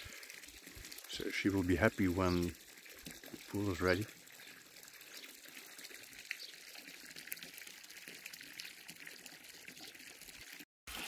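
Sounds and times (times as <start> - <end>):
water jet trickling into pool: 0.0 - 11.0.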